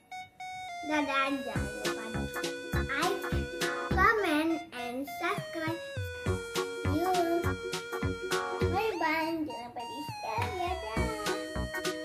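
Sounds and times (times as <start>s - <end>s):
upbeat music with steady beat: 0.0s - 12.0s.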